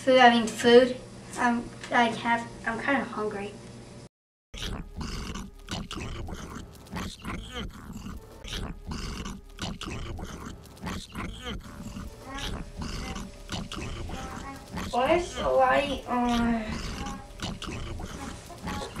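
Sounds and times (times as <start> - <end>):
person making animal-like noises: 4.6 - 19.0.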